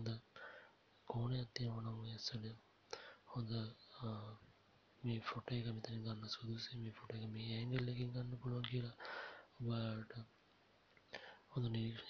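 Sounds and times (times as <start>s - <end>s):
low voice talking quietly: 3.3s - 9.0s, 11.5s - 12.0s.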